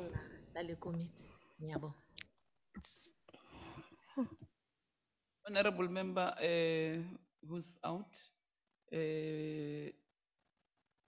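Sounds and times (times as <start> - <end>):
person's voice: 0.0 - 1.9, 5.5 - 8.2, 9.0 - 9.9.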